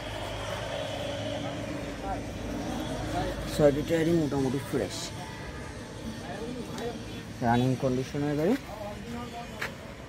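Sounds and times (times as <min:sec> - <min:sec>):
low hum and rumble: 0:00.0 - 0:07.4
faint background voices: 0:00.0 - 0:10.0.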